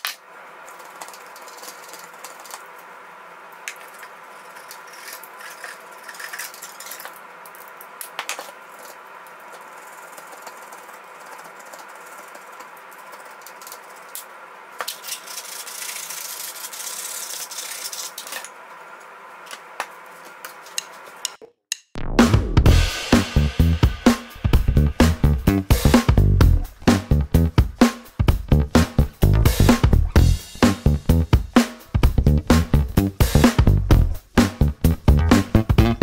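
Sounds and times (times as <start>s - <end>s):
music with drum beat: 22.1s - 36.0s.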